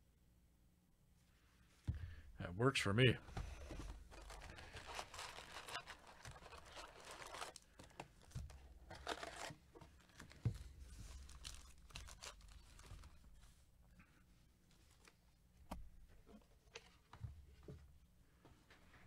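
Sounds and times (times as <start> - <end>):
foil packs crinkling: 3.8 - 13.4
cardboard box tearing: 4.2 - 7.6, 9.0 - 9.5.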